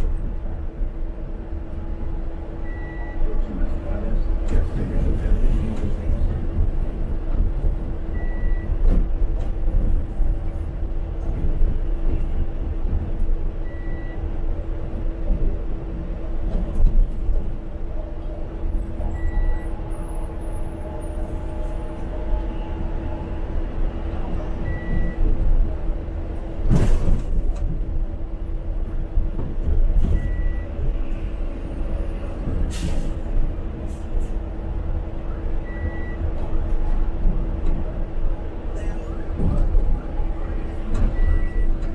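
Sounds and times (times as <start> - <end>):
bus engine and road rumble: 0.0 - 41.9.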